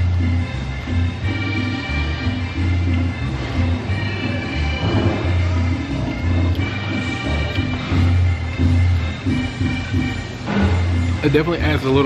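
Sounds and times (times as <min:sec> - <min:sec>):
heavy bass beat: 0:04.6 - 0:11.2.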